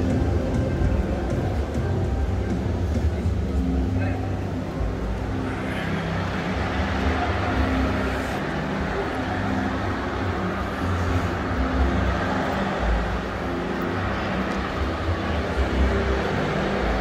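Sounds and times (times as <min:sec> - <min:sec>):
indistinct voices: 0:00.0 - 0:17.0.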